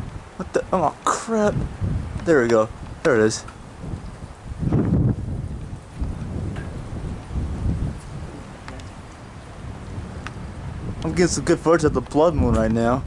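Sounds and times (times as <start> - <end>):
wind buffeting microphone: 0.0 - 13.0
faint ticks: 10.2 - 10.4.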